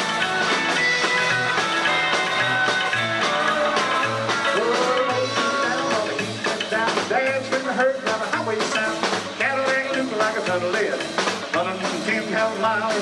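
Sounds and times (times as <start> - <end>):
electric guitar: 0.0 - 13.0
rock and roll band playing: 0.0 - 13.0.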